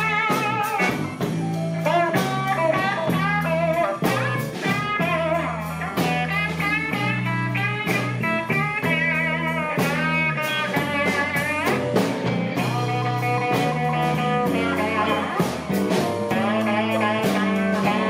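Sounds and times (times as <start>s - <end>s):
blues band playing: 0.0s - 18.0s
electric guitar bent notes: 0.0s - 18.0s.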